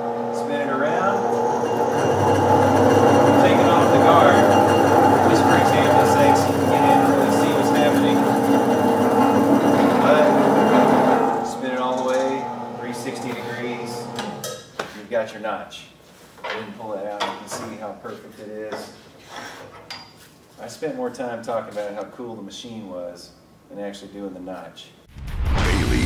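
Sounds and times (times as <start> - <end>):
motor hum: 0.0 - 14.4
end mill grinding metal tube: 0.0 - 14.5.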